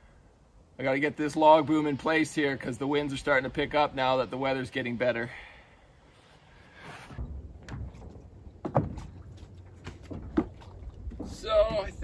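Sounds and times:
wind rumble on microphone: 0:07.1 - 0:12.0
knocks on wooden dock: 0:07.6 - 0:09.2, 0:09.9 - 0:11.8.

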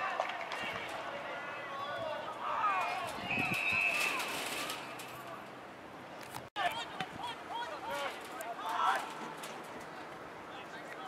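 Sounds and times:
players shouting: 0:00.0 - 0:04.4, 0:06.6 - 0:09.4.

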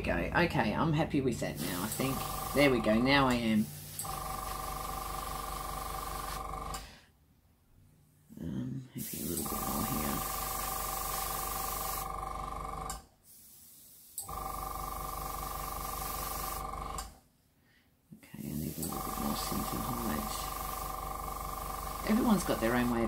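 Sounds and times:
air hissing through airbrush: 0:01.6 - 0:02.8, 0:03.5 - 0:06.9, 0:09.0 - 0:12.1, 0:13.2 - 0:14.4, 0:15.2 - 0:17.0, 0:18.4 - 0:23.0
airbrush compressor humming: 0:01.6 - 0:07.0, 0:09.0 - 0:13.0, 0:14.2 - 0:17.2, 0:18.4 - 0:23.0.

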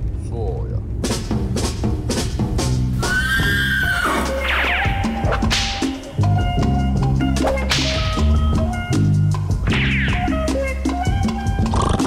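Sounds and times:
music with deep bass: 0:00.9 - 0:12.0
horse whinnying: 0:03.0 - 0:05.0.

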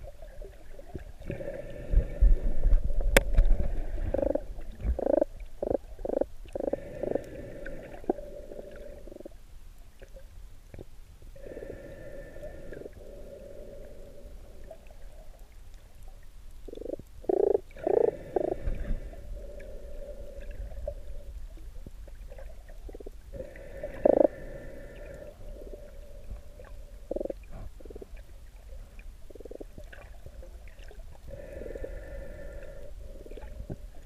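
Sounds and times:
exhaled air bubbling underwater: 0:00.0 - 0:34.0
scuba regulator breath intake: 0:23.3 - 0:26.8, 0:31.3 - 0:33.8.

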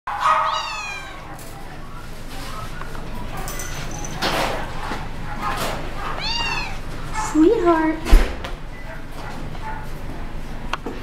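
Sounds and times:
cat meowing: 0:00.4 - 0:01.3, 0:06.1 - 0:06.8.

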